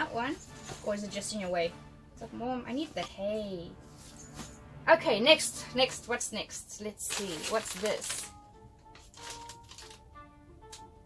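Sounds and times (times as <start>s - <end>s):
quiet background music: 0.0s - 11.0s
paper bag crinkling: 7.0s - 8.4s, 9.0s - 10.1s.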